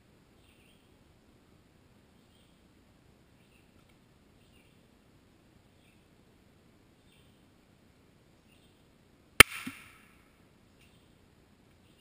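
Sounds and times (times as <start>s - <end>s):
rifle shot crack: 9.4s - 10.2s.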